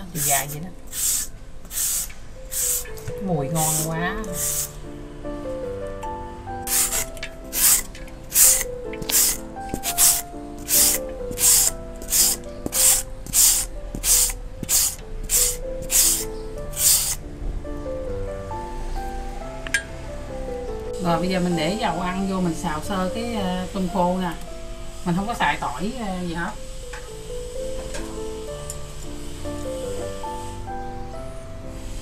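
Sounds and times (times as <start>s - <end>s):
background music: 0.0s - 32.0s
shredder scraping mango: 6.7s - 17.2s.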